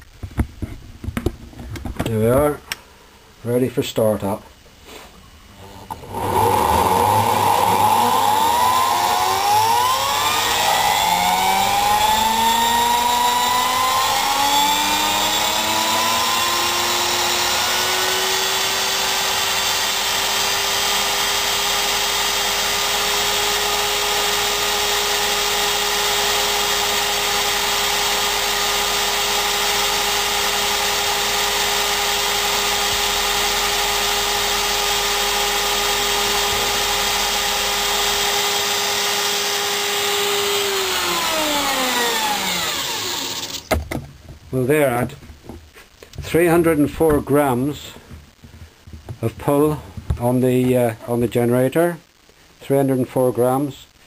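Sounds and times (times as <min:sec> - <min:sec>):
electric drill motor whine: 0:06.0 - 0:43.7.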